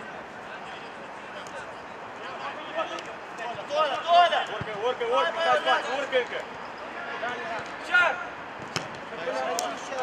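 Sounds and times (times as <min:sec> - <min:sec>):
ball kick: 0:08.6 - 0:09.1.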